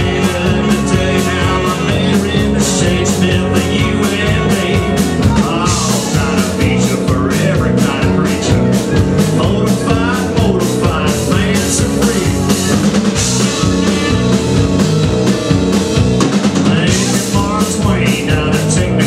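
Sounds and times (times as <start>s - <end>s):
live rockabilly band playing: 0.0s - 19.0s
wavering guitar lead line: 0.0s - 19.0s.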